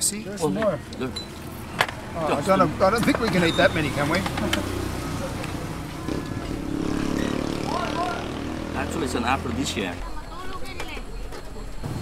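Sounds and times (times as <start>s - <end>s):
vehicle engine passing: 1.4s - 10.1s.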